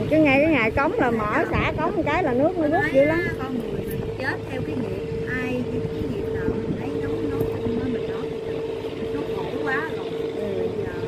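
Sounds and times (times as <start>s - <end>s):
boat engine droning: 0.0s - 11.0s
indistinct voices talking: 0.0s - 11.0s.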